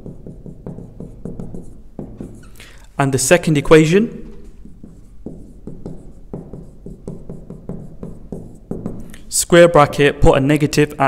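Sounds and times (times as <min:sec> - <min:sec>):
marker writing on whiteboard: 0:00.0 - 0:09.8.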